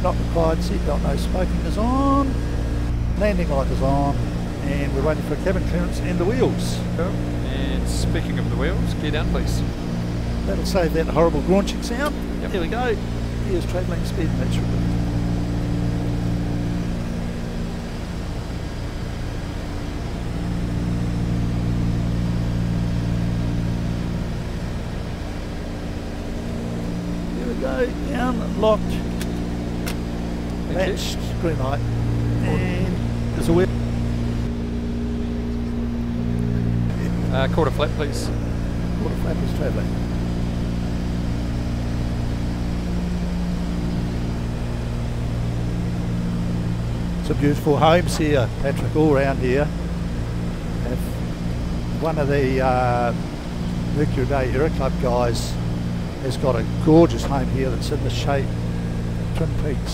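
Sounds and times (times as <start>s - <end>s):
propeller aircraft engines droning: 0.0s - 59.9s.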